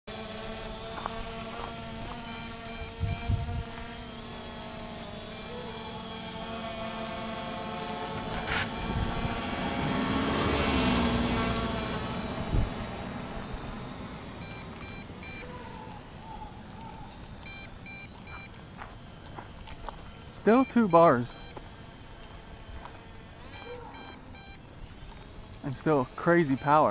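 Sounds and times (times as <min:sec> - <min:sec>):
drone whining buzz: 0:00.1 - 0:26.9.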